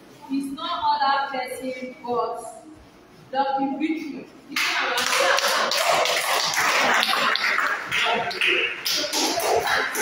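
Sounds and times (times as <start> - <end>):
children clapping: 4.6 - 10.0.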